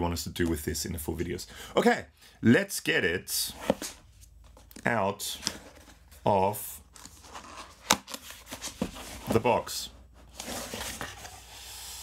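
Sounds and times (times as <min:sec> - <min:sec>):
cardboard scraping and rustling: 0:07.0 - 0:11.6.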